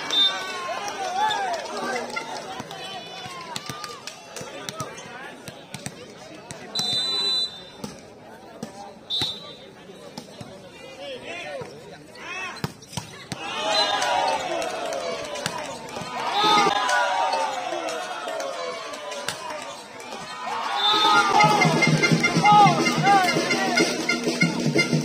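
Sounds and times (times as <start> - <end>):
referee's whistle blasts: 0.0 - 0.5, 6.7 - 7.8, 9.1 - 9.8, 13.6 - 14.3, 20.6 - 25.0
people shouting: 13.2 - 24.0.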